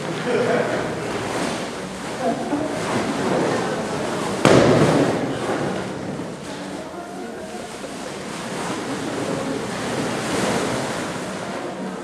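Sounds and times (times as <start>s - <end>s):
balloon bursting with echo: 4.4s - 5.4s.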